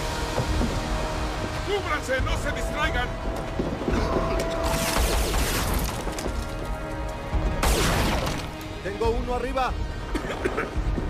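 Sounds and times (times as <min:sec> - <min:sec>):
dramatic action score: 0:00.0 - 0:11.0
crashing impacts and debris: 0:03.2 - 0:08.8
gunfire: 0:07.6 - 0:08.6.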